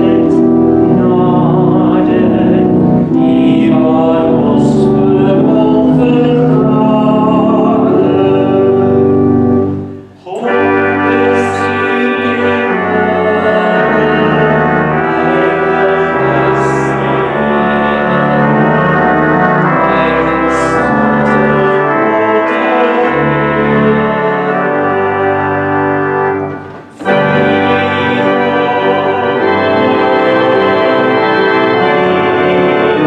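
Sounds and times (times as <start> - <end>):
church organ playing a hymn: 0.0 - 33.0.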